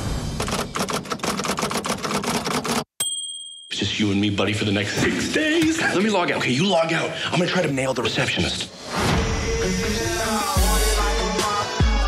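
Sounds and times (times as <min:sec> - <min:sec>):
typewriter keys clacking: 0:00.4 - 0:02.9.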